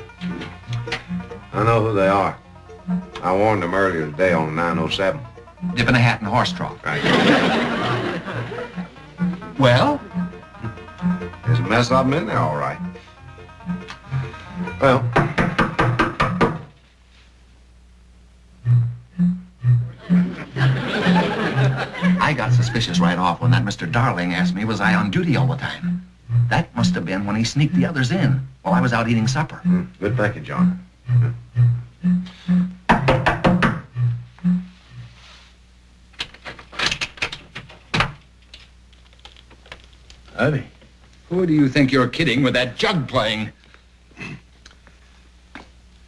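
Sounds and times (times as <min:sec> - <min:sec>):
low bass notes of string music: 0:00.0 - 0:16.4, 0:18.6 - 0:33.1.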